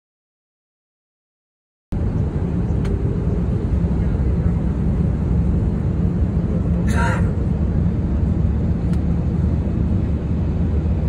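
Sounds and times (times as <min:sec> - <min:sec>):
jet engine cabin rumble: 0:01.9 - 0:11.0.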